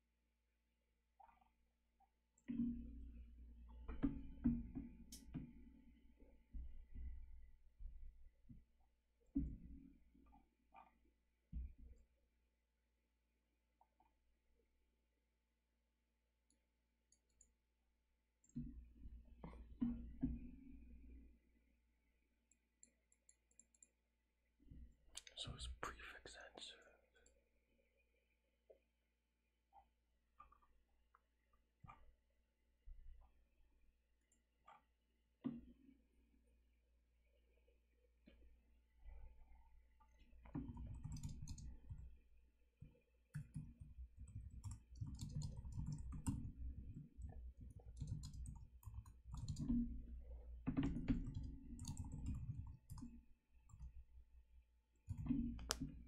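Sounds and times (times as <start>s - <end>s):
man speaking quietly: 25.2s - 27.1s
keyboard typing: 40.6s - 42.1s, 43.3s - 49.9s, 50.7s - 53.9s.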